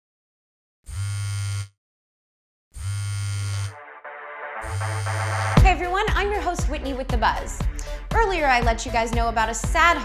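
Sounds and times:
phone vibrating on hard surface: 0.9 - 1.8, 2.8 - 3.8, 4.6 - 5.6.

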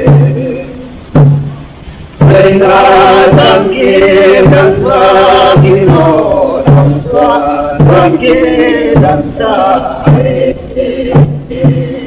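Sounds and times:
voices singing a chant: 0.0 - 1.0, 2.2 - 12.0
low regular beat: 0.0 - 12.0.

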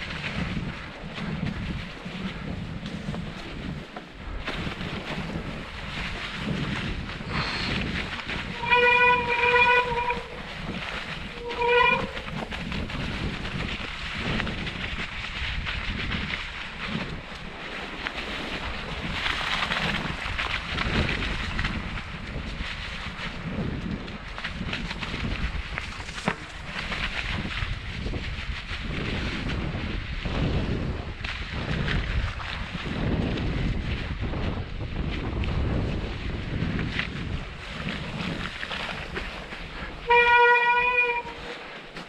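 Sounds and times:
bike rolling over snow: 0.0 - 42.0
wind on microphone: 0.0 - 42.0.

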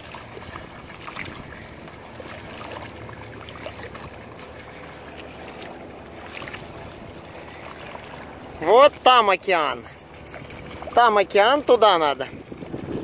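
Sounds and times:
dogs splashing in shallow water: 0.0 - 13.0.

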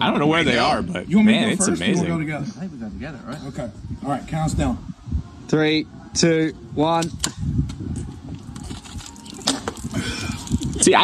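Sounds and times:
beer can cracking open: 8.6 - 10.8
can hitting the ground: 9.4 - 9.9.

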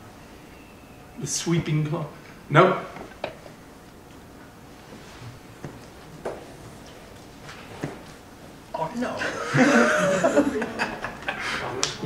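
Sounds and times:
person chuckling: 9.2 - 11.8.

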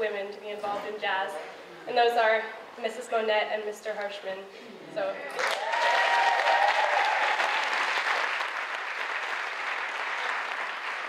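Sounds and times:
audience applauding: 5.4 - 11.0
long whoop: 5.5 - 7.5.

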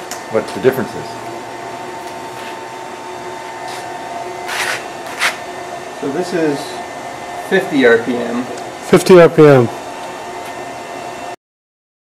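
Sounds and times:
motor hum with faint tones: 0.0 - 11.4.

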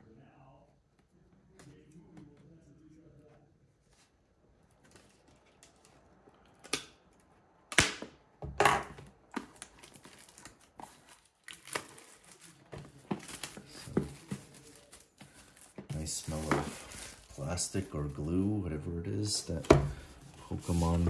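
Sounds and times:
plastic wrap crinkling and tearing: 9.2 - 18.4.

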